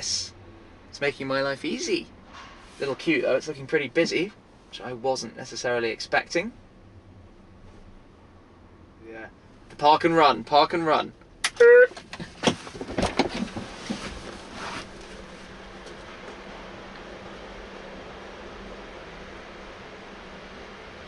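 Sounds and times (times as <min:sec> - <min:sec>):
steady low hiss: 0:00.0 - 0:21.0.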